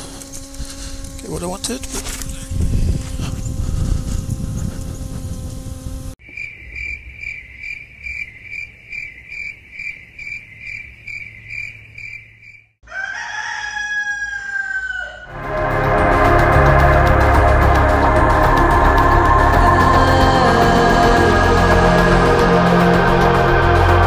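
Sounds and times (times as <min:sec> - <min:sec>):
microlight engine running: 0:00.0 - 0:06.2, 0:15.3 - 0:24.0
crickets chirping: 0:02.5 - 0:12.8
rooster crowing: 0:12.8 - 0:16.2
music: 0:15.3 - 0:24.0.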